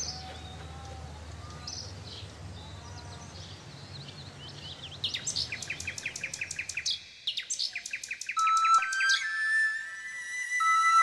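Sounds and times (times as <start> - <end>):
held flute note: 8.4 - 11.0.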